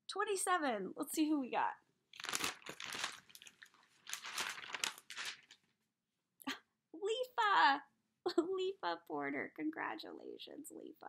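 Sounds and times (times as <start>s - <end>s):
paper pages rustling: 2.2s - 5.8s.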